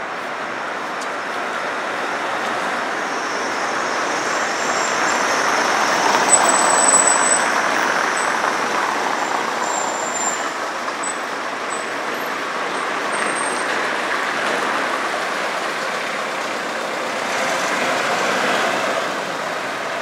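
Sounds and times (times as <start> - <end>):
cars driving past on wet street: 0.0 - 20.0.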